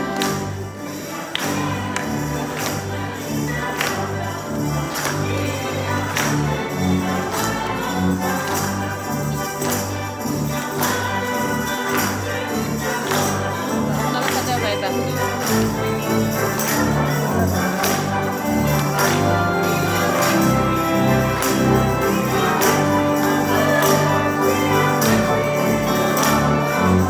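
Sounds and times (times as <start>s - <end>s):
congregation singing: 0.0s - 27.0s
instrumental accompaniment: 0.0s - 27.0s
rhythmic hand clapping: 0.0s - 27.0s.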